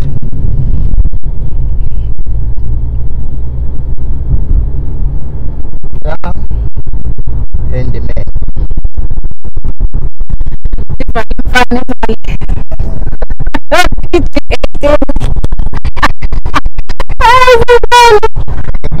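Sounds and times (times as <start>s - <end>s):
car interior rumble: 0.0s - 19.0s
rubbing on microphone: 8.2s - 19.0s.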